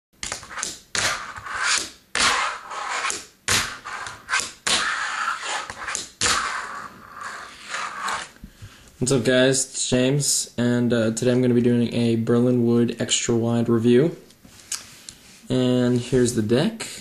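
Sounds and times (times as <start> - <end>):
fingerboard wheels rolling on table: 3.8 - 8.3.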